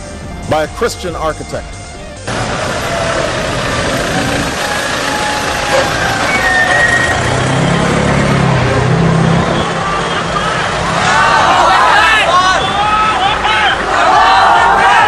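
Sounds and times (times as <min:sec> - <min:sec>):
truck engines running: 0:00.0 - 0:15.0
low engine hum: 0:01.7 - 0:11.0
people talking on street: 0:09.5 - 0:15.0.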